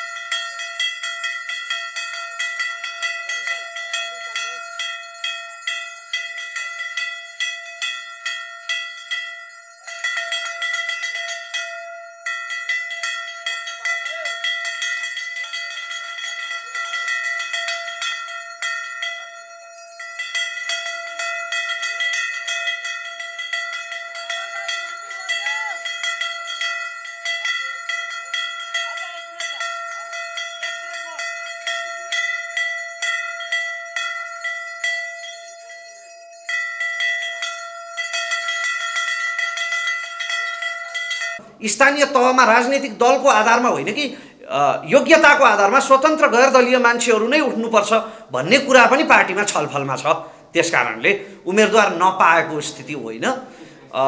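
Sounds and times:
brass bells rung rapidly: 0:00.0 - 0:54.0.

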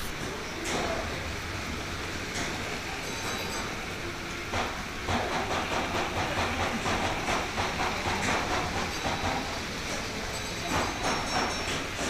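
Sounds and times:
model train clicking over rails: 0:02.0 - 0:12.0.

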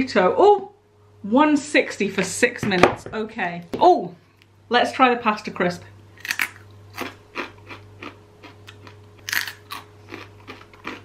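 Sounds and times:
crunchy snack being chewed: 0:06.2 - 0:11.0.

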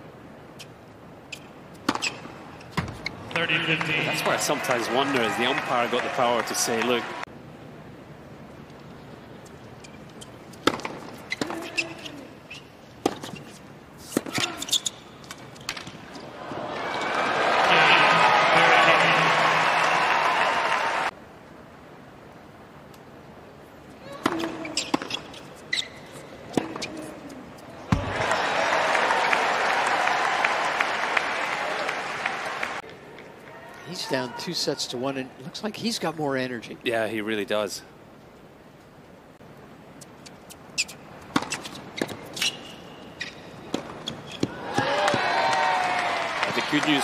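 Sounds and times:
crowd cheering and applauding: 0:03.6 - 0:07.3, 0:16.3 - 0:21.1, 0:28.0 - 0:32.8, 0:44.5 - 0:47.0.

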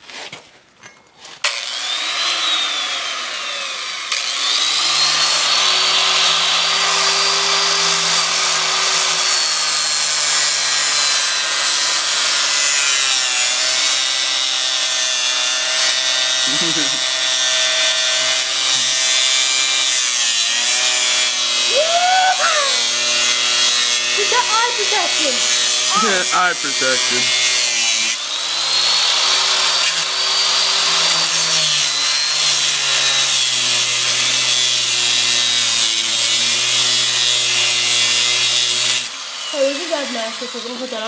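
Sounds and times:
grinder cutting through chain: 0:01.4 - 0:41.0.

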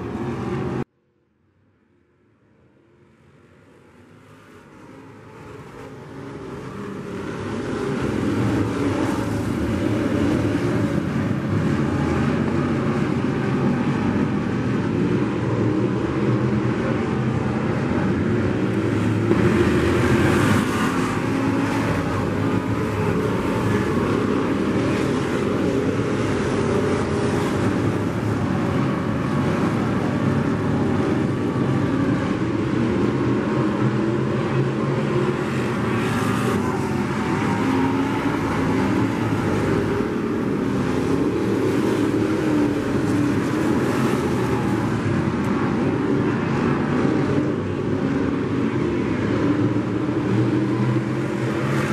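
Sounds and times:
race car engines droning: 0:00.0 - 0:00.9, 0:02.6 - 0:51.9.

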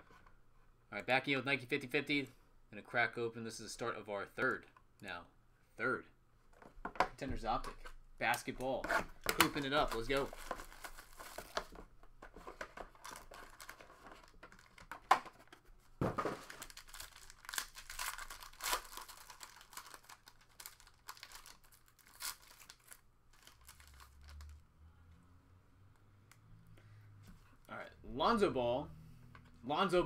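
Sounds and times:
foil wrapper crinkling and tearing: 0:13.0 - 0:14.9, 0:16.4 - 0:24.6.

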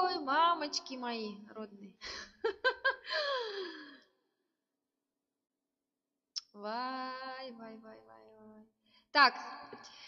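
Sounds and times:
woman sighing: 0:03.0 - 0:04.1.

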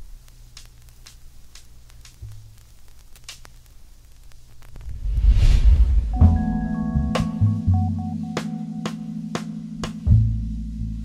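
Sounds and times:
crackles and clicks: 0:00.0 - 0:06.4
low hum: 0:04.6 - 0:08.1.

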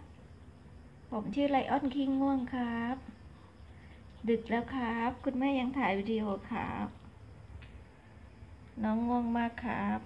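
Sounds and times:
low background hum: 0:00.0 - 0:10.0
woman speaking: 0:01.1 - 0:03.2, 0:04.2 - 0:07.1, 0:08.8 - 0:10.0.

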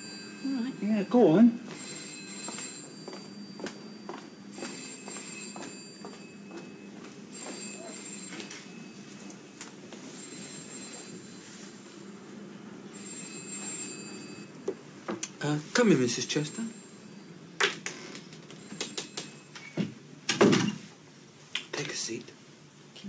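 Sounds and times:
telephone bell ringing: 0:00.0 - 0:14.7, 0:15.7 - 0:19.8
footsteps: 0:01.6 - 0:11.9.

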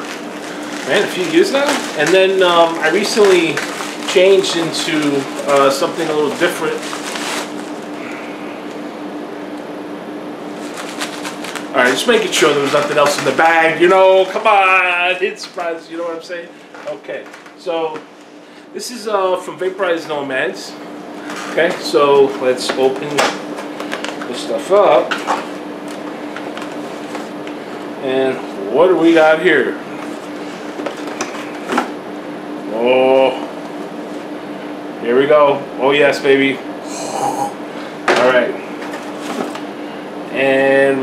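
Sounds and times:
plastic bag rustling: 0:00.0 - 0:08.8, 0:10.5 - 0:18.4, 0:21.2 - 0:28.0
steady low hum: 0:00.0 - 0:41.0.

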